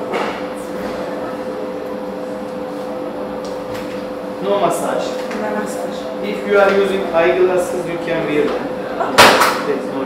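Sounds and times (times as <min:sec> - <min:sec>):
steady machine hum: 0:00.0 - 0:10.0.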